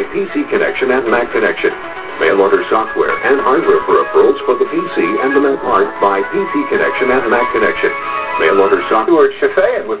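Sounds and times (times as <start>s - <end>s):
background music: 0.0s - 10.0s
person talking: 0.0s - 10.0s.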